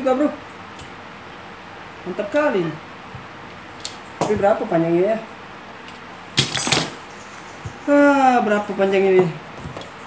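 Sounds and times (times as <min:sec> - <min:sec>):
tripod handling scrape: 0:06.4 - 0:07.0.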